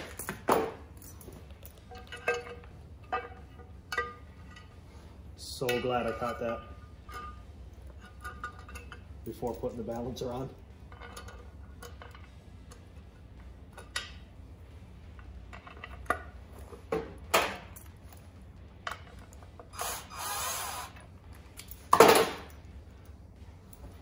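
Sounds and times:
hissing scrape: 19.7 - 21.0.

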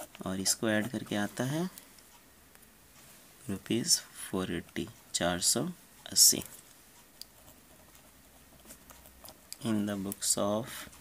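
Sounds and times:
pen scratching on paper: 7.3 - 9.5.

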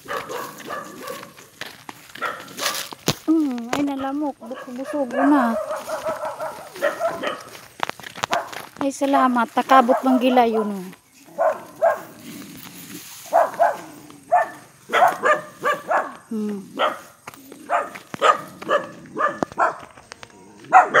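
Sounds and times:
dog barking in short barks: 0.0 - 1.4, 2.2 - 2.9, 4.0 - 7.5, 8.3 - 8.5, 11.4 - 12.1, 13.3 - 16.2, 16.8 - 17.1, 17.7 - 19.8, 20.7 - 21.0.

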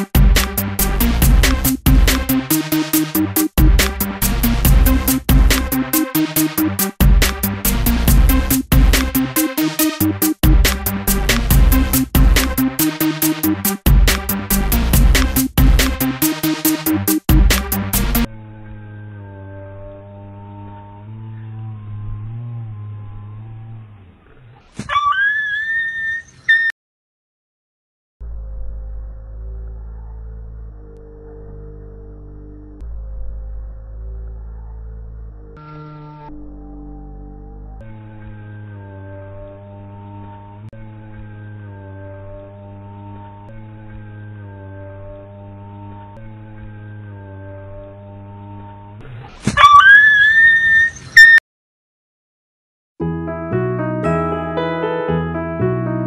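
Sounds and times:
dog yelping in pain: 24.6 - 26.7, 49.4 - 51.4
low steady drone: 28.2 - 49.0.

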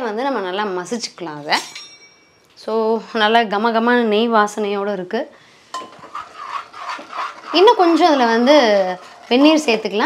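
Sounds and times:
woman speaking: 0.0 - 1.8, 2.6 - 5.3, 7.5 - 10.0
ladle clinking against pot: 5.7 - 6.6.

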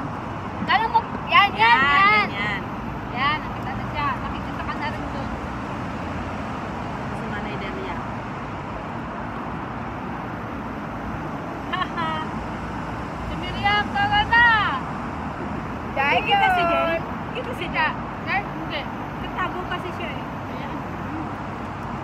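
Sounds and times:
city traffic hum: 0.0 - 22.0.

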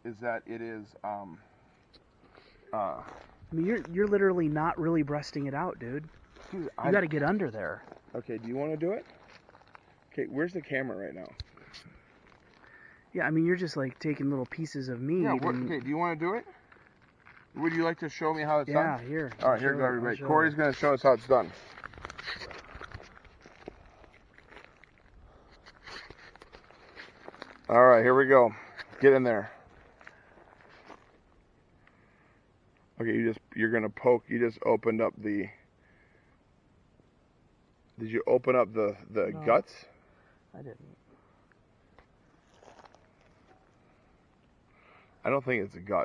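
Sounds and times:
faint soft clicks and rustles: 5.4 - 19.8, 20.5 - 33.0, 41.0 - 45.2
footsteps on forest floor: 6.0 - 10.1, 20.6 - 31.2, 42.3 - 43.6.

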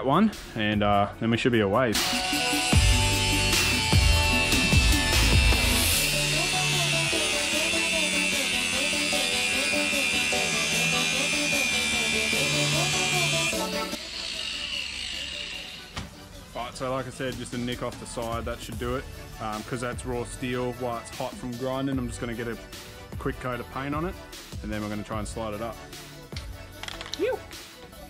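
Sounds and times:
background music with bass: 0.0 - 14.1, 15.4 - 28.0
angle grinder grinding steel: 2.0 - 18.1.

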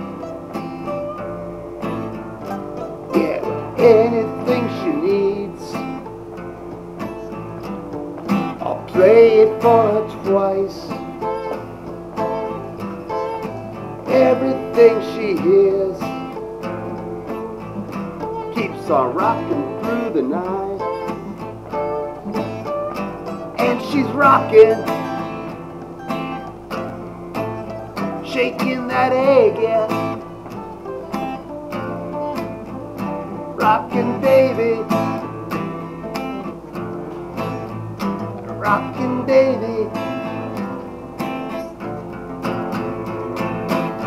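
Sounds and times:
acoustic guitar strumming chords: 0.0 - 44.0.

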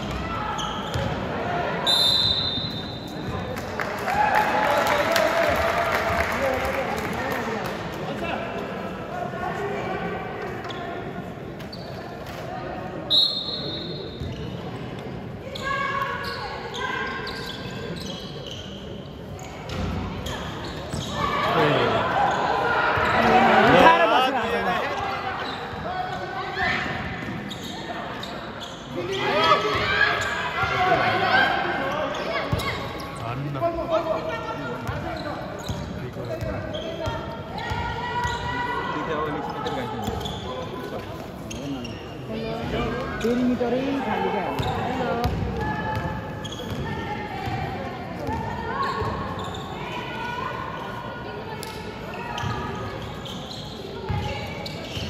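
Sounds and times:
players and spectators voices: 0.0 - 55.0.

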